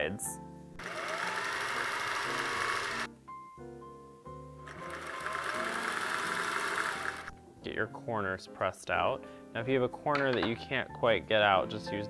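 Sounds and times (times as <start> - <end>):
sewing machine stitching: 0.8 - 3.1, 4.7 - 7.3.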